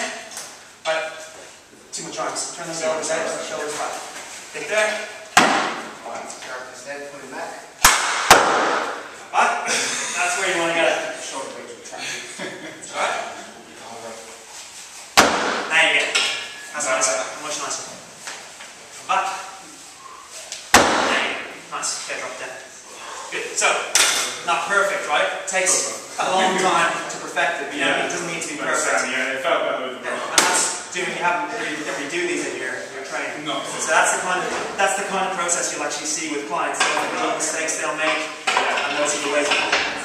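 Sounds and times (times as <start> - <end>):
people talking: 1.9 - 5.2, 9.3 - 14.4, 21.0 - 40.0.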